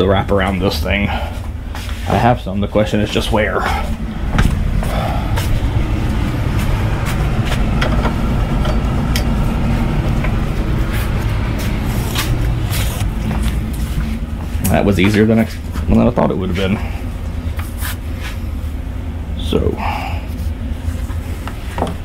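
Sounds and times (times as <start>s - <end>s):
low mechanical rumble: 0.0s - 22.0s.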